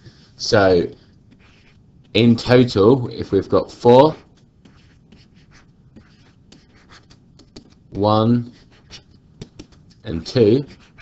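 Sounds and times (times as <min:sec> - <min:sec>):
stylus scratching on pen tablet: 0:01.3 - 0:02.6, 0:04.0 - 0:11.0.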